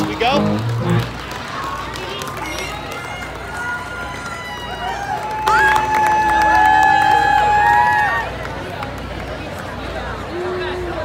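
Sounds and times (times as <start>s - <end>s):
crowd cheering and screaming: 2.4s - 8.4s.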